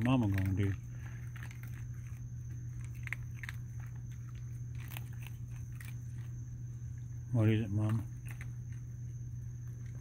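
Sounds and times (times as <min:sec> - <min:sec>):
raccoon drinking water: 0:00.0 - 0:10.0.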